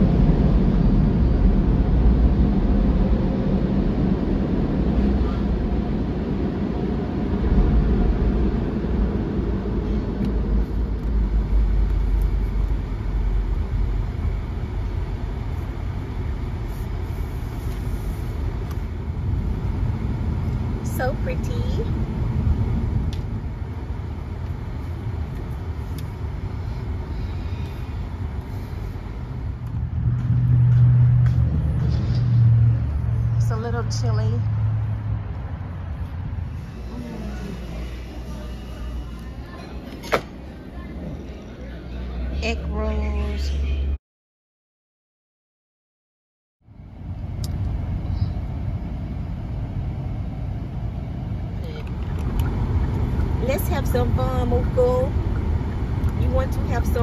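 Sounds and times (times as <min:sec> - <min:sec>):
car engine and tyres rumbling: 0:00.0 - 0:44.0, 0:46.7 - 0:57.0
low hum: 0:00.0 - 0:44.0, 0:46.6 - 0:57.0.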